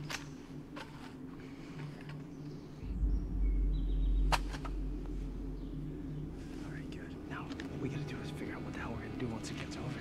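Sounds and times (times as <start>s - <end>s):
deep low rumble: 2.8s - 9.7s.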